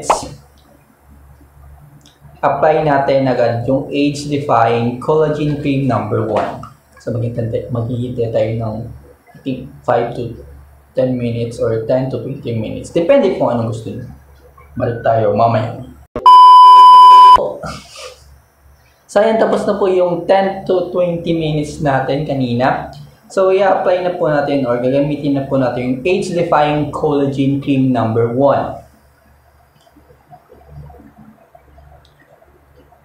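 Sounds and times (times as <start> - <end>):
loud electronic beep: 16.2 - 17.4.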